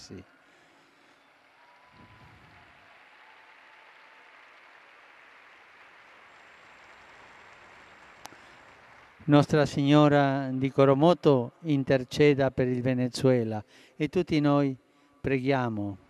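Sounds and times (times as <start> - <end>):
faint crowd applause: 0.0 - 11.6.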